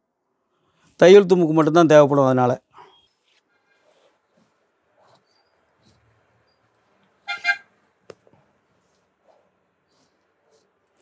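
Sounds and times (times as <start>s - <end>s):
vehicle horn honking: 7.2s - 7.7s.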